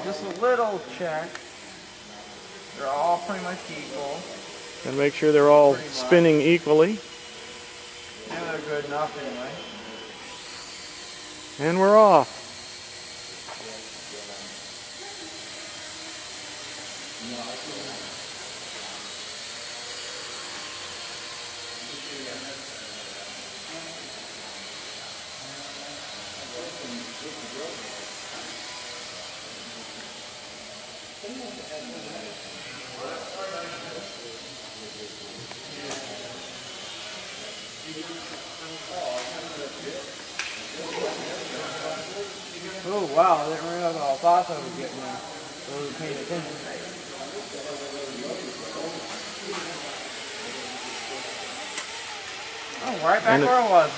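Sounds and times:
quadcopter motors whirring: 0:00.0 - 0:53.9.

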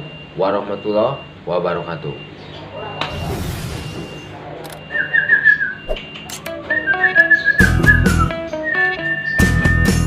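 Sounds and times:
music with plucked notes: 0:06.4 - 0:10.0.

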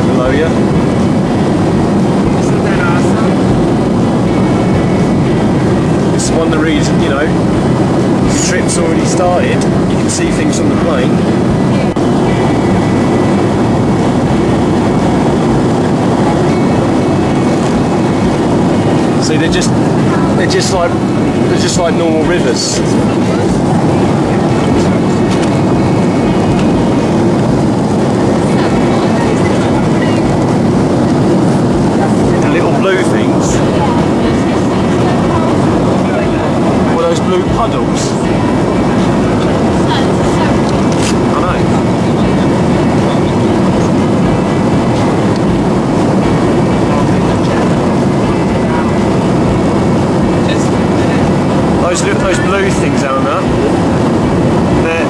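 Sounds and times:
faint voices: 0:00.0 - 0:55.0
jet airliner cabin noise: 0:00.0 - 0:55.0.

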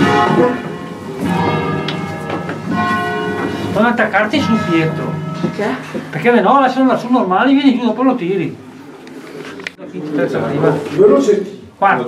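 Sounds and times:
church bells ringing: 0:00.0 - 0:08.6.

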